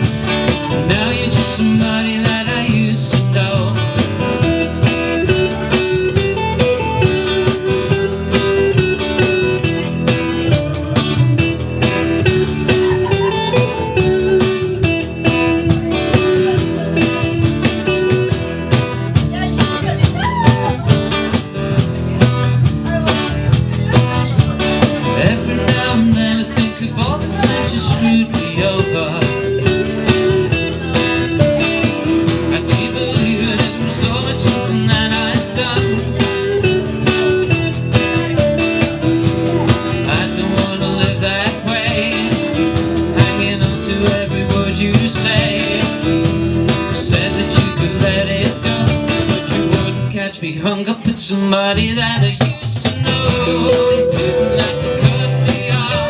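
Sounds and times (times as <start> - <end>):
upright double bass: 0.0 - 50.3, 51.1 - 56.0
cajon beat: 0.0 - 56.0
hollow-body electric guitar: 0.0 - 56.0
strummed acoustic guitar: 0.0 - 56.0.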